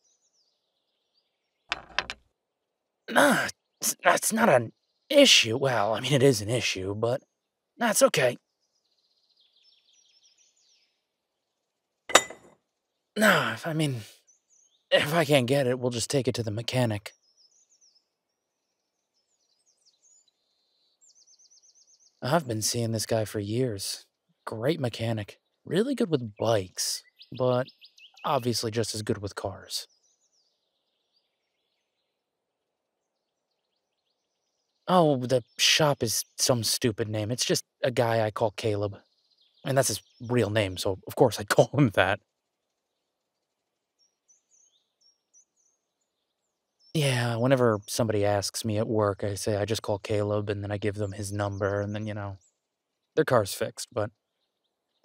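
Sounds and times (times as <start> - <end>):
faint birds chirping: 0.0 - 55.0
faint low background hiss: 14.9 - 17.1, 39.7 - 42.2
small bird chirping: 33.0 - 55.0.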